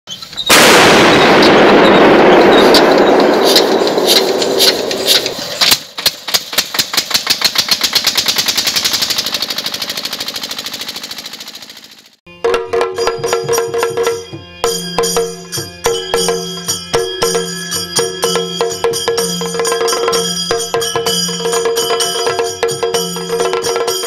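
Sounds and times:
loud burst with hiss and cracks: 0.5 - 11.0
fast train of sharp clicks: 2.5 - 12.2.

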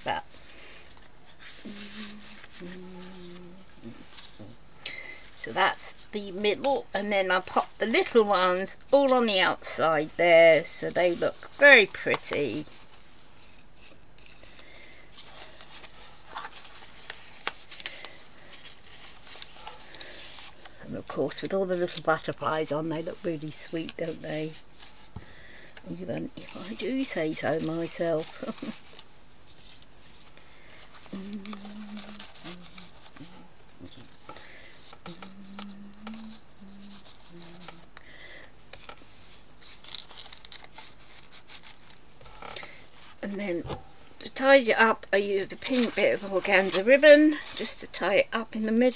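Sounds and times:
paper rustling: 0.1 - 9.6, 10.2 - 38.0, 38.6 - 43.8, 45.4 - 47.8
soft hummed notes: 1.5 - 4.6, 31.0 - 38.2.

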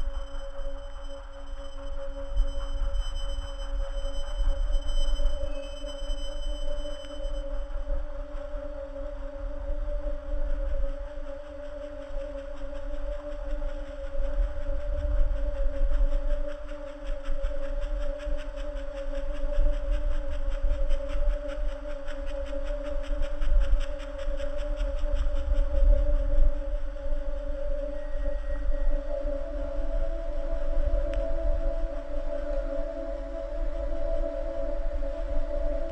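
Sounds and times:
ambient drone music: 0.0 - 35.9.

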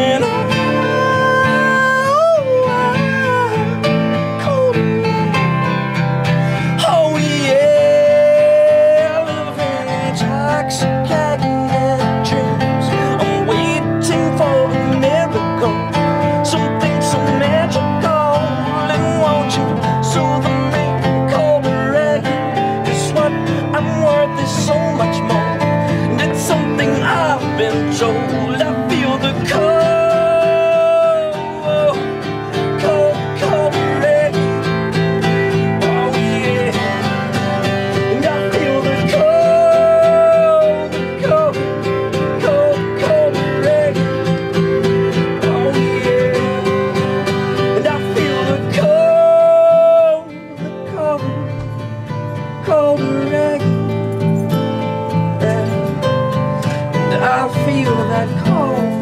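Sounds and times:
band playing acoustic guitars: 0.0 - 59.0.

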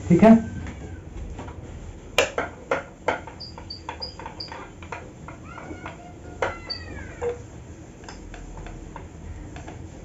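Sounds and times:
whiteboard squeaks: 3.3 - 7.4.

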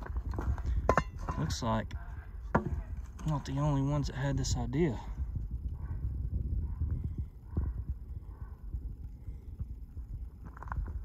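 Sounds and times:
footsteps on stony ground: 0.0 - 1.7, 10.4 - 11.0
low wind rumble on microphone: 0.0 - 11.0.

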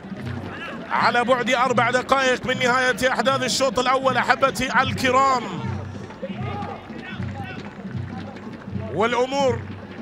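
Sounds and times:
drum beating: 0.0 - 10.0.

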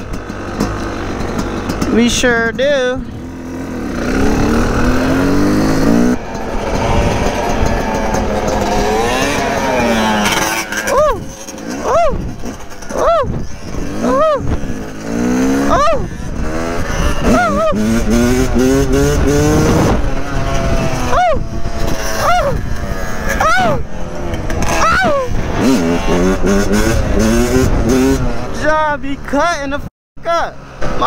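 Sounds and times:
dirt bike engine revving: 0.0 - 31.0.

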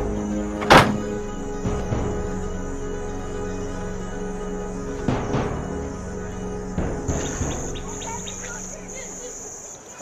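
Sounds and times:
low background music notes: 0.0 - 9.7
crickets trilling: 0.0 - 10.0.

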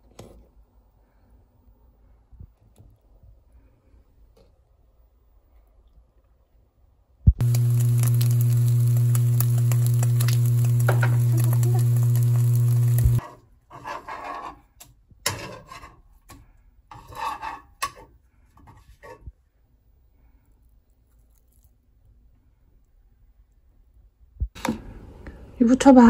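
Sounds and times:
low electrical hum: 4.6 - 13.2
egg sizzling in a pan: 7.3 - 13.2.

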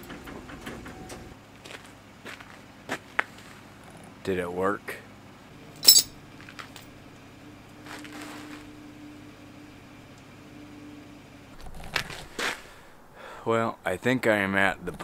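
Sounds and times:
faint steady hum: 1.5 - 15.0
tools clanking on metal: 5.8 - 6.1.

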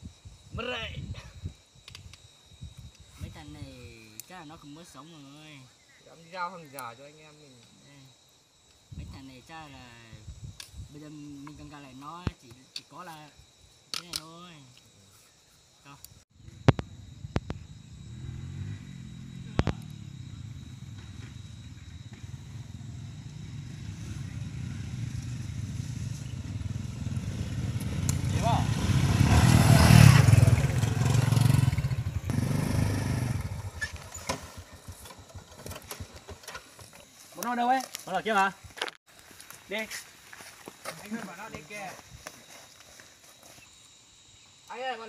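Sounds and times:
motorbike engines at low speed: 16.4 - 37.2
footsteps on pine needle path: 36.2 - 43.9.

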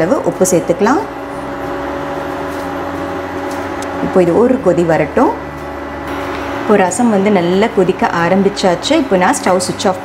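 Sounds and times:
induction cooktop humming: 0.0 - 10.0.

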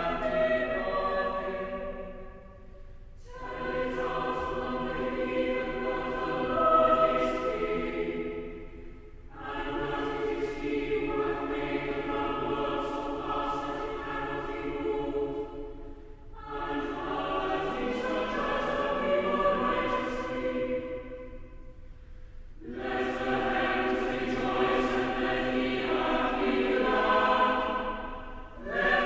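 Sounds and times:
mixed choir chanting: 0.0 - 2.6, 3.2 - 15.8, 16.4 - 21.4, 22.6 - 29.0.

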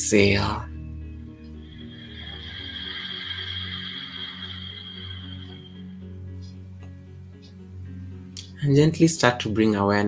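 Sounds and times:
ambient synthesizer music: 0.0 - 8.5.

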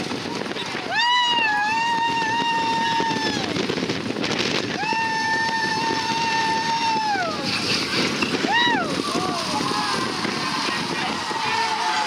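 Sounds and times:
roller coaster train moving: 0.0 - 12.0
wind on microphone: 0.0 - 12.0
riders screaming: 0.3 - 3.8, 4.6 - 12.0.

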